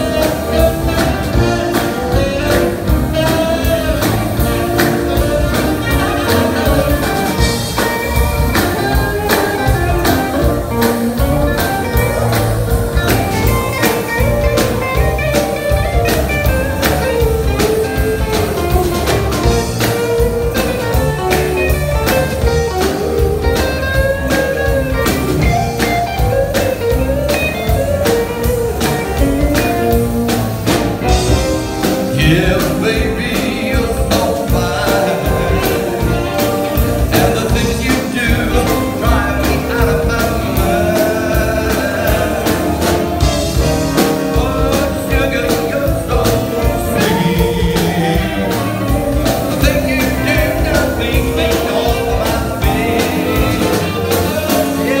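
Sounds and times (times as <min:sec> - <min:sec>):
live blues band playing: 0:00.0 - 0:55.0.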